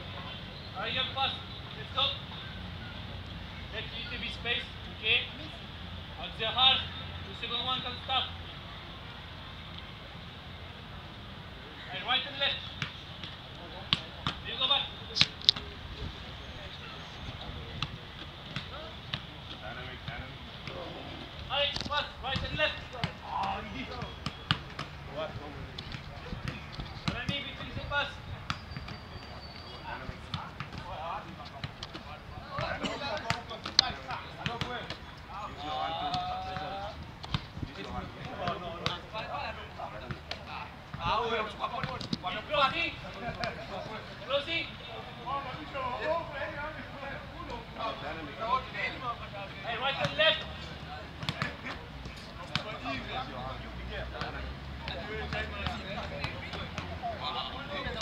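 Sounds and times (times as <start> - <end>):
footballs being kicked: 36.0 - 39.1, 51.2 - 52.8.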